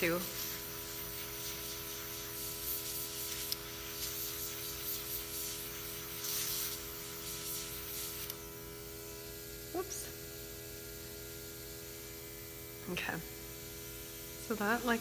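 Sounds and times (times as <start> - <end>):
airbrush spraying hiss: 0.0 - 10.6
compressor hum: 0.0 - 15.0.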